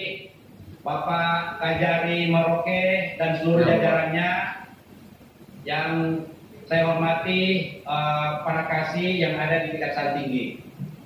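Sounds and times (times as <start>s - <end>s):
man chanting: 3.3s - 4.2s.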